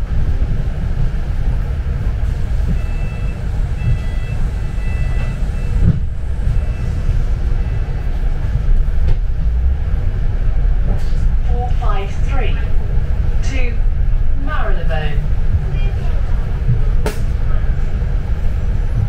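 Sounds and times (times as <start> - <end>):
bus engine and road rumble: 0.0 - 19.0.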